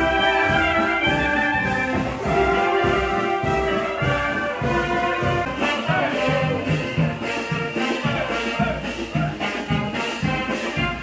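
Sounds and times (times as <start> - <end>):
wind band playing: 0.0 - 11.0.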